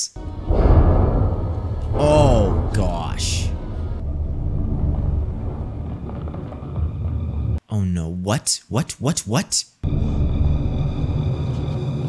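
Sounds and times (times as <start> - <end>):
dark ambient drone: 0.2 - 7.6, 9.8 - 12.0.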